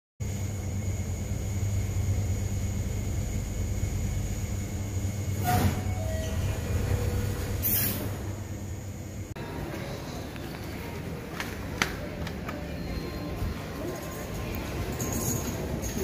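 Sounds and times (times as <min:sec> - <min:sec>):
lift mechanical rumble: 0:00.3 - 0:16.0
lift doors sliding open hiss: 0:07.3 - 0:08.3.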